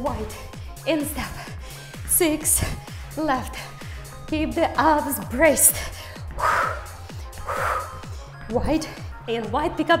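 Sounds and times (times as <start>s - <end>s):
workout music with bass beat: 0.0s - 10.0s
woman breathing out hard: 6.2s - 8.1s.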